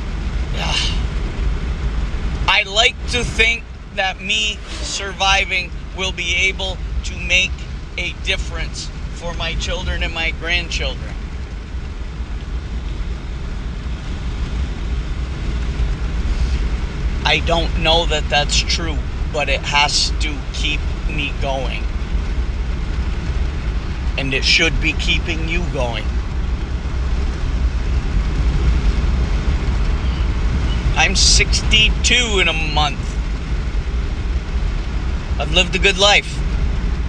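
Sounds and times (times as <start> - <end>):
truck road and engine rumble: 0.0 - 37.0.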